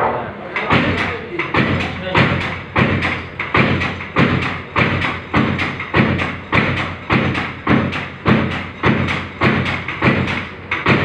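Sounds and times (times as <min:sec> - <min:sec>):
stamping press striking soap: 0:00.6 - 0:11.0.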